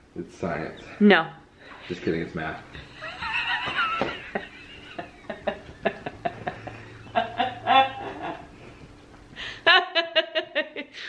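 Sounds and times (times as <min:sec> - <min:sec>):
woman laughing hard: 0:02.8 - 0:08.5, 0:09.4 - 0:11.0.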